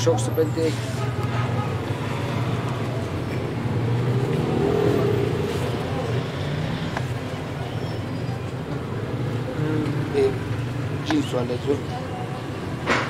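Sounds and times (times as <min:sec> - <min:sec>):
road traffic rumble: 0:00.0 - 0:13.0
faint voices: 0:04.4 - 0:13.0.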